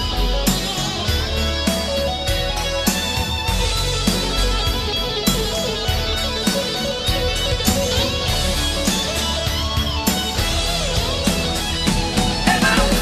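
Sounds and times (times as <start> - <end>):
electric guitar: 0.0 - 13.0
instrumental rock music: 0.0 - 13.0.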